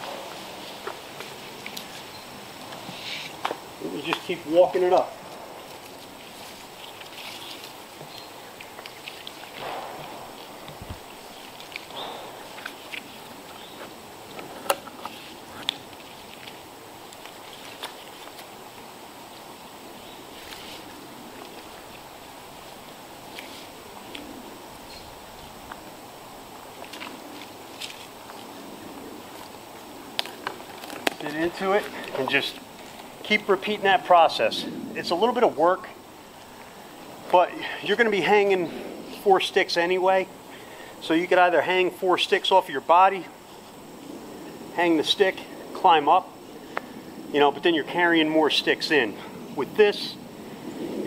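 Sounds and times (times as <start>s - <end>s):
outdoor background noise: 0.0s - 51.0s.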